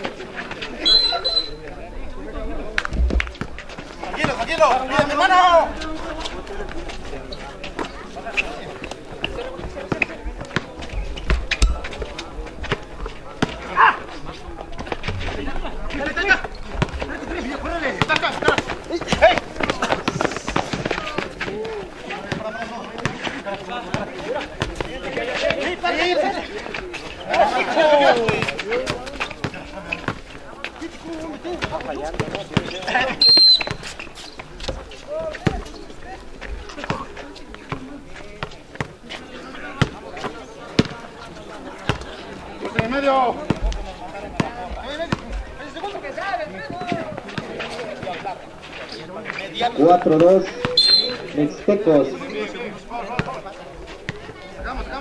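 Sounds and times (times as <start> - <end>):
people calling out: 0.7 - 1.7, 50.5 - 51.4
footfalls on concrete: 2.6 - 41.1, 46.6 - 51.4
basketball bouncing: 16.4 - 17.1, 40.8 - 41.0.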